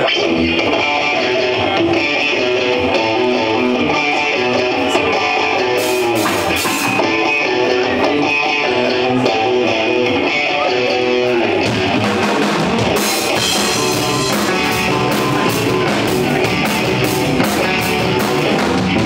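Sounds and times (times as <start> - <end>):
electric guitars playing rock riff: 0.0 - 19.0.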